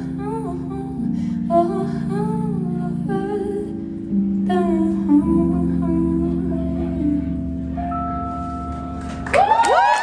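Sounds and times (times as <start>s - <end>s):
woman singing wavering notes: 0.0s - 8.1s
keyboard chords: 0.0s - 9.4s.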